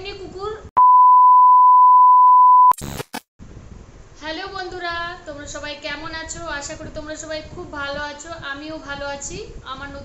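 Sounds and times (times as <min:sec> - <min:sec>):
test tone beep: 0:00.8 - 0:02.8
static glitch crackle: 0:02.6 - 0:03.3.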